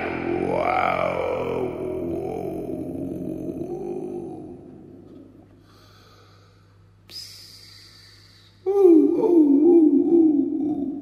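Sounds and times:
didgeridoo drone: 0.0 - 5.4.

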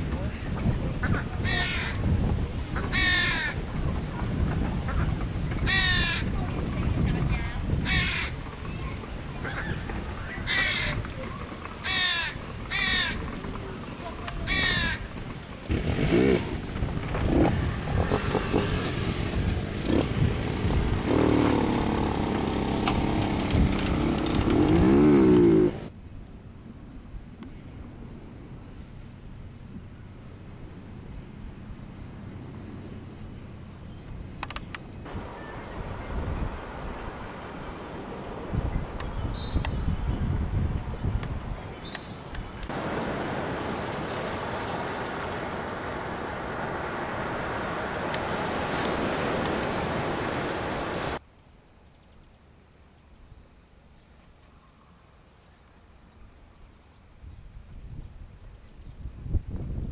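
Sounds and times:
voices: 0.0 - 15.8
bird's harsh calls: 1.0 - 2.0, 2.8 - 3.6, 4.8 - 6.4, 7.8 - 15.2.

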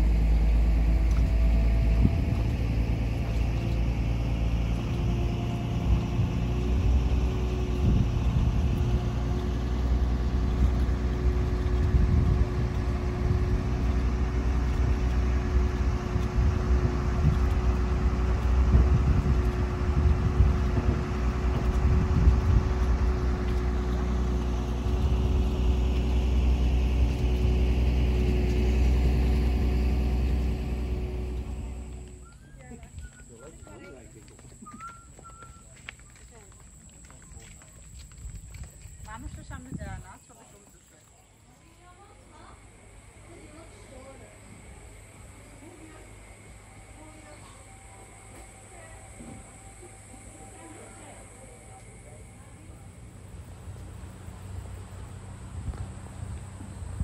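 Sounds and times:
ferry engine rumbling: 0.0 - 57.0
low buffeting: 0.0 - 57.0
steady hum: 41.3 - 57.0.

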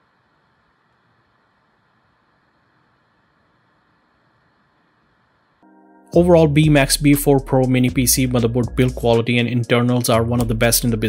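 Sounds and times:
small cooling fan whirring: 0.0 - 5.6.

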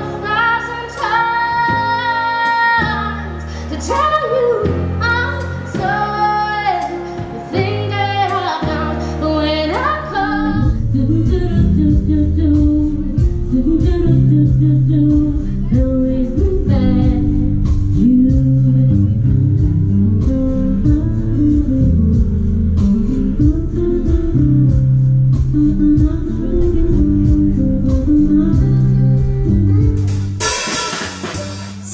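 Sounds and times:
woman singing: 0.0 - 29.8.

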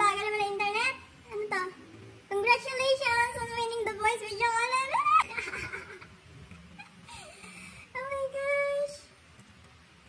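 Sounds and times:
high-pitched wordless voice: 0.0 - 5.4, 7.9 - 9.1.

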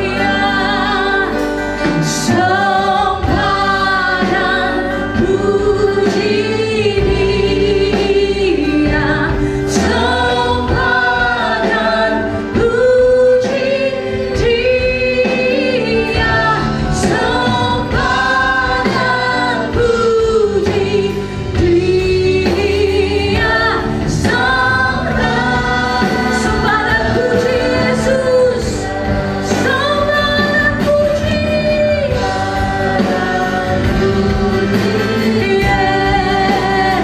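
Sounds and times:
choir singing praise song: 0.0 - 37.0
instrumental accompaniment: 0.0 - 37.0
woman leading singing: 0.0 - 37.0.

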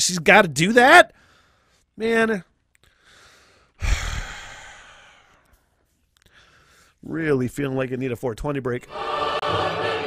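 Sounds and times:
man sighing into microphone: 3.8 - 5.4.

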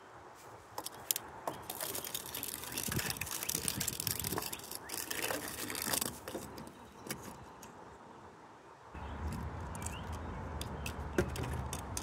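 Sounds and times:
metal toy car rattling on wood: 0.8 - 7.3.

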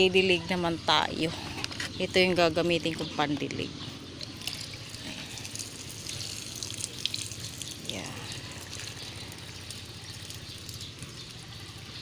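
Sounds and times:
water splashing onto plant leaves: 4.2 - 12.0.

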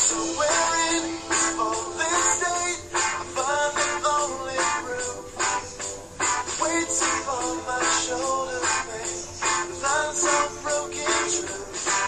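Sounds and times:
song with vocals over a beat: 0.0 - 12.0.

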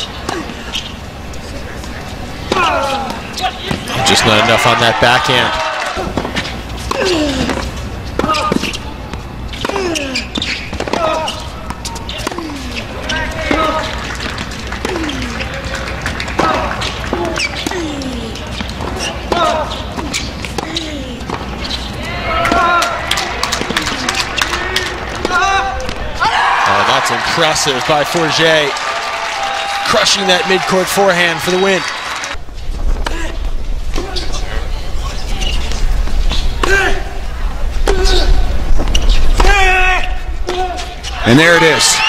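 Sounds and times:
tennis ball bouncing: 6.0 - 12.6, 13.4 - 21.8.

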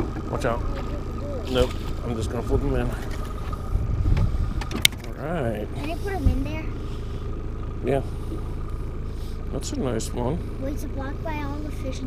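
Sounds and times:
boat motor idling: 0.0 - 12.0.

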